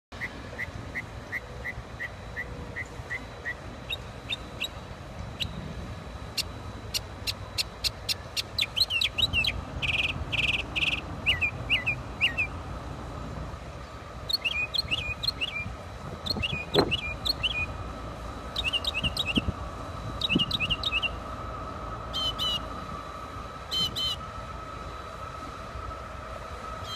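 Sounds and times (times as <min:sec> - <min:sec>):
songbird singing: 0:00.2 - 0:12.6, 0:13.8 - 0:21.3, 0:22.0 - 0:24.3.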